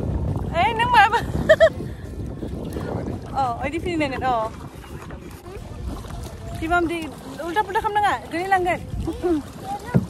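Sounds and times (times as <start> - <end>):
kayak paddling water noise: 0.0 - 10.0
wind noise on microphone: 0.0 - 10.0.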